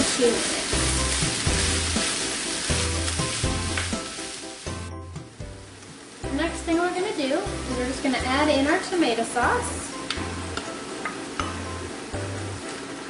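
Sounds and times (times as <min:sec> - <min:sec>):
food sizzling in a skillet: 0:00.0 - 0:13.0.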